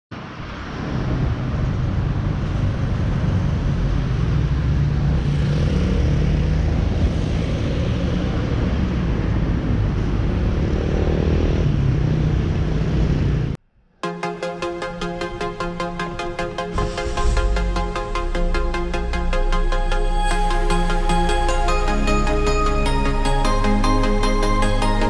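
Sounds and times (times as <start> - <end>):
road traffic passing: 0.2 - 25.0.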